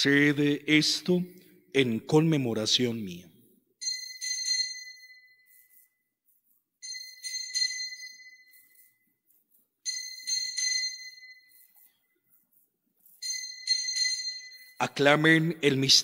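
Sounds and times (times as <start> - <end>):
altar bells ringing: 3.8 - 5.6, 6.8 - 9.0, 9.8 - 11.8, 13.2 - 16.0.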